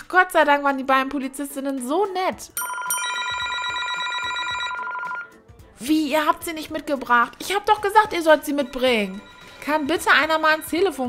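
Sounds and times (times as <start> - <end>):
telephone ringing: 2.6 - 5.4, 8.0 - 10.8.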